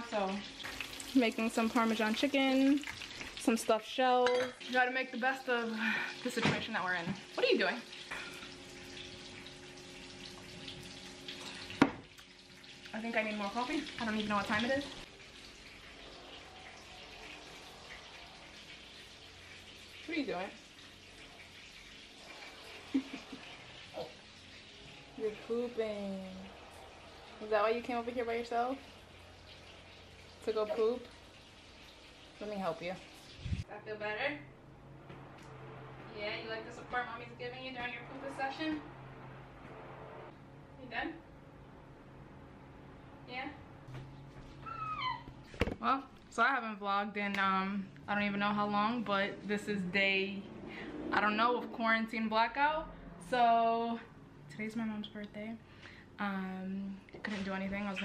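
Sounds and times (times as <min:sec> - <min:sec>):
toddler squealing: 0:44.6 - 0:45.3.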